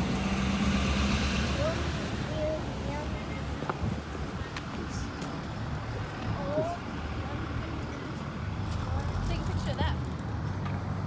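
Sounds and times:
low rumble of traffic: 0:00.0 - 0:11.0.

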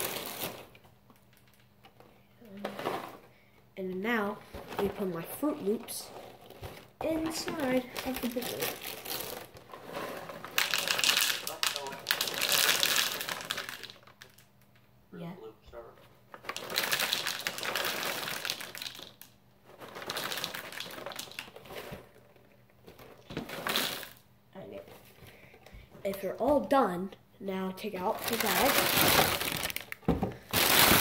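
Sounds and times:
bag crinkling: 0:00.0 - 0:01.6, 0:06.3 - 0:14.4, 0:16.4 - 0:19.2, 0:19.8 - 0:22.0, 0:23.2 - 0:24.2, 0:28.1 - 0:31.0
cereal poured into a bowl: 0:08.2 - 0:14.3, 0:16.5 - 0:19.2, 0:20.0 - 0:21.5, 0:23.6 - 0:24.2.

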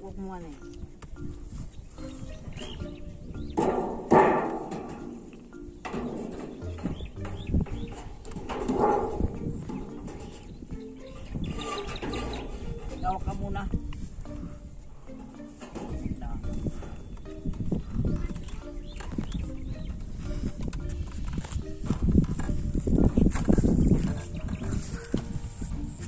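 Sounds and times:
background music: 0:00.0 - 0:26.0
sheet-metal gutter scraping and knocking: 0:03.5 - 0:13.7, 0:15.1 - 0:17.0.

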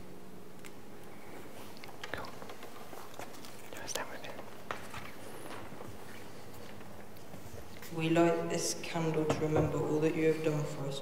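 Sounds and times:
small clicks and rustles: 0:00.6 - 0:07.9
faint whispering: 0:02.0 - 0:04.6.

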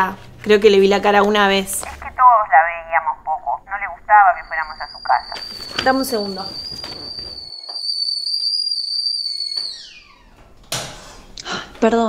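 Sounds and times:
kettle whistling: 0:04.9 - 0:10.4.

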